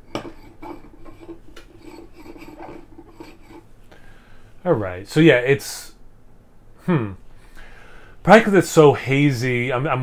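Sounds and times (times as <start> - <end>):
glass scraping on coaster: 0.0 - 3.7.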